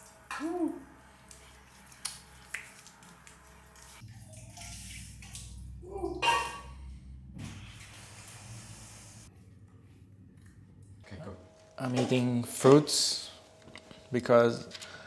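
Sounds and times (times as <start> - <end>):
water splashing and dripping: 0.0 - 6.7.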